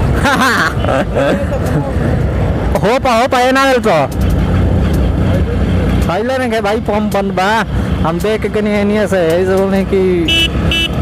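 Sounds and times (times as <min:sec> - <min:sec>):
road noise: 0:00.0 - 0:11.0.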